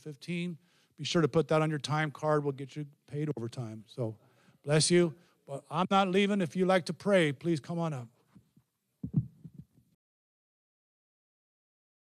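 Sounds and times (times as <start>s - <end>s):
microphone handling thumps: 9.0s - 9.8s.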